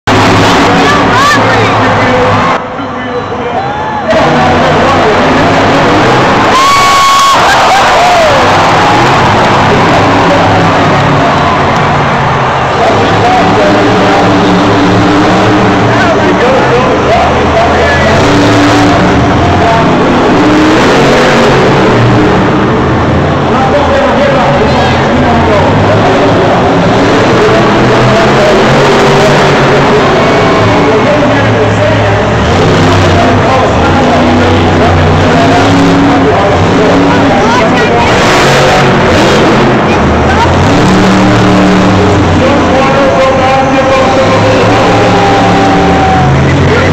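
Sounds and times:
truck engine droning: 0:00.0 - 0:46.9.

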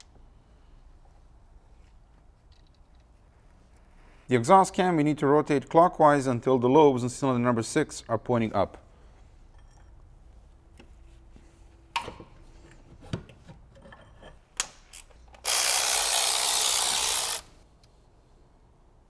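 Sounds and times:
wrench clicking on metal: 0:15.4 - 0:17.5.

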